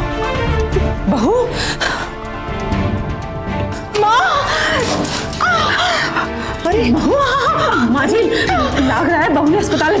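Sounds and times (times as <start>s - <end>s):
dramatic background music: 0.0s - 10.0s.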